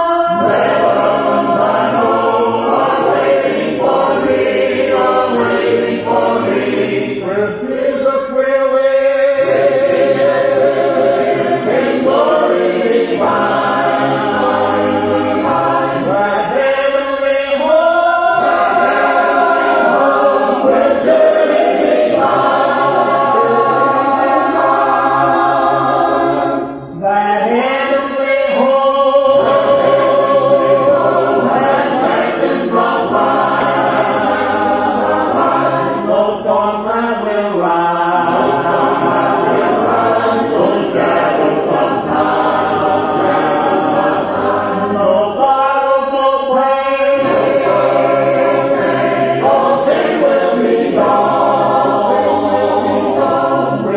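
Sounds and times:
choir singing a cappella hymn: 0.0s - 53.9s.

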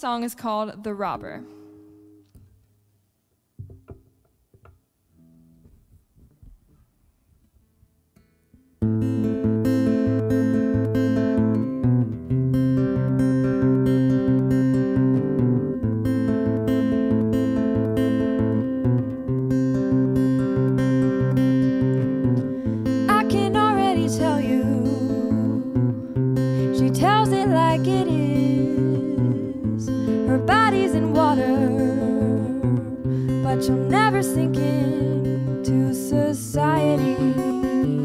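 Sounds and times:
acoustic guitar chords: 0.0s - 2.9s, 7.6s - 38.0s.

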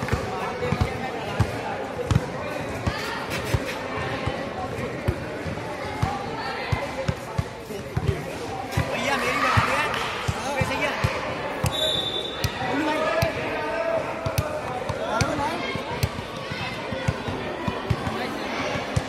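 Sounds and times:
people shouting and chattering: 0.0s - 19.0s.

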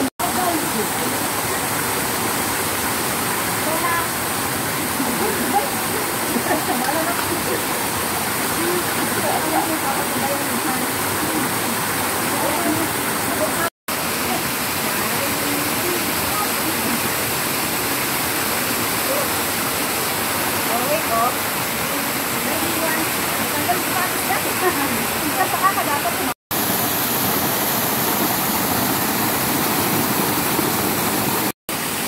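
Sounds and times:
water rushing in a rocky stream: 0.0s - 32.0s.

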